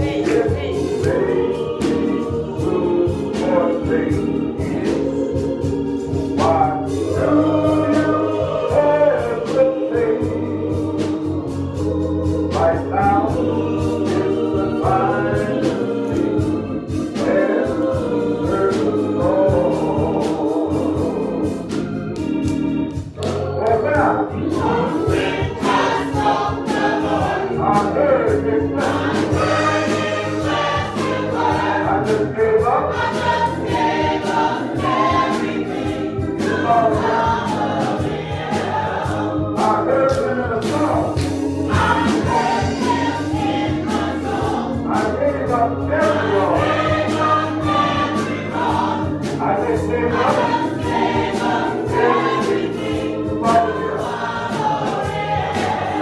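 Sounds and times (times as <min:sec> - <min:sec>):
beat accompaniment: 0:00.0 - 0:56.0
gospel singing voices: 0:00.0 - 0:56.0
organ: 0:00.0 - 0:56.0.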